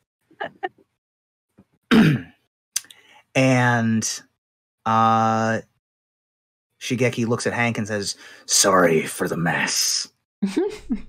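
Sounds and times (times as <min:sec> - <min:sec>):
person clearing throat: 0:01.9 - 0:02.4.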